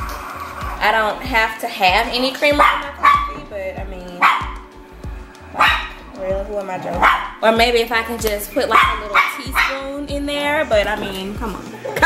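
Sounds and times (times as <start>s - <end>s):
dog barking: 2.6s - 3.3s, 4.2s - 4.7s, 5.5s - 6.1s, 7.0s - 7.4s, 8.7s - 9.8s.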